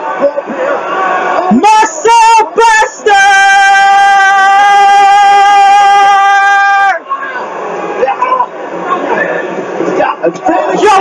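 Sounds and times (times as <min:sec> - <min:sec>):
jumble of voices: 0:00.0 - 0:11.0.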